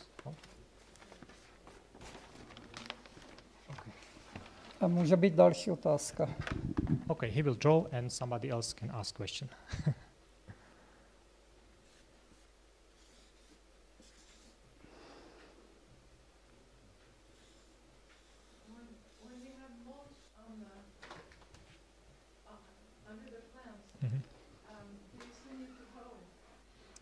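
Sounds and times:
paper sheets rustling: 0:00.1 - 0:05.3
paper crinkle: 0:00.2 - 0:05.2
marker pen scratching on paper: 0:11.8 - 0:14.6.

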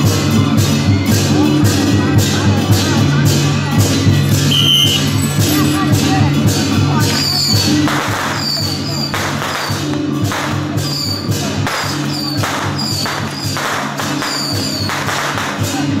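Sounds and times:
percussion with cymbal crashes: 0:00.0 - 0:16.0.

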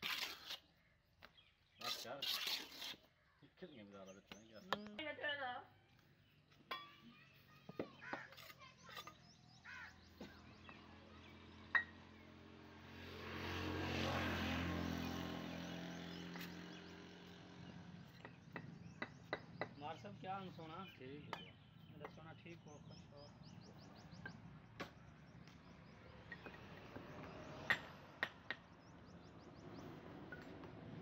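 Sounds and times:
steel trowel scraping mortar: 0:00.0 - 0:00.8, 0:01.8 - 0:03.2, 0:08.1 - 0:09.4
engine passing by: 0:09.8 - 0:19.6, 0:23.3 - 0:31.0.

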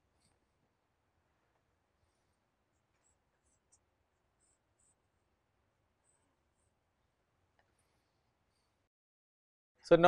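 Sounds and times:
pen scratching on paper: 0:02.1 - 0:05.3.

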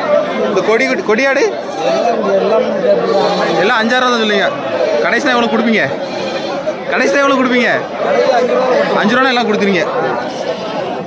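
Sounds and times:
people chattering: 0:00.0 - 0:11.0
goats bleating: 0:01.6 - 0:07.7, 0:09.9 - 0:11.0.

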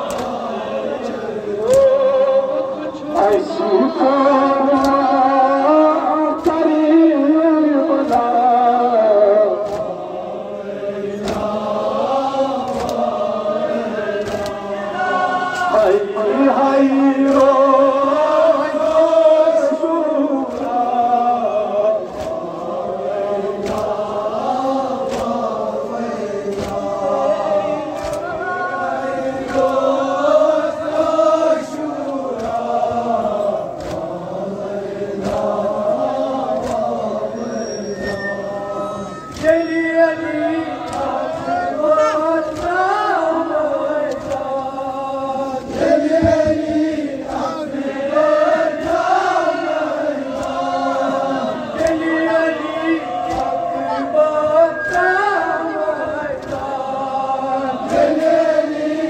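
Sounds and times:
crowd of men chanting: 0:00.0 - 0:59.0.

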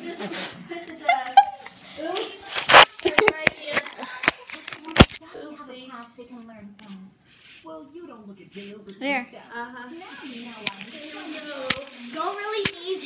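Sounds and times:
voices: 0:00.0 - 0:13.0.

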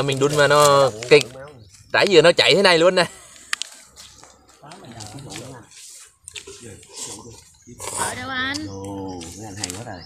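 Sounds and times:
quiet voices talking: 0:00.0 - 0:10.0.

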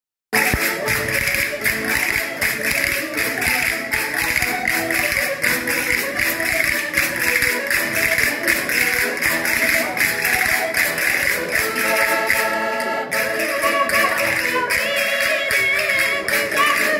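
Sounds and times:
percussive beat: 0:00.4 - 0:12.6
voices singing: 0:06.2 - 0:16.9.

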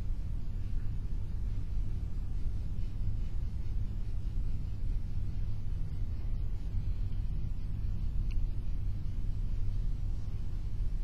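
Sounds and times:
low background rumble: 0:00.0 - 0:11.0
faint tick: 0:08.2 - 0:08.5.

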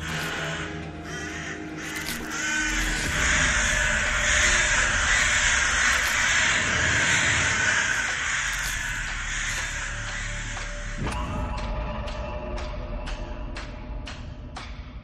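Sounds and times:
harsh cawing: 0:00.0 - 0:11.0
dark horror music: 0:00.0 - 0:15.0.

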